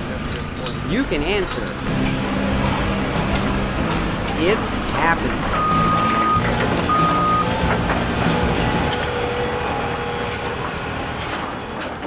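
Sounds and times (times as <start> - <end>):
heavy vehicle engine rumble: 0.0 - 12.0
reversing alarm beeping: 5.5 - 7.6.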